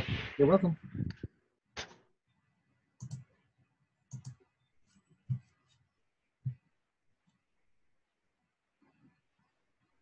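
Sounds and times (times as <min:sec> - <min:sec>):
computer mouse clicks: 0:03.0 - 0:03.3, 0:04.1 - 0:04.5.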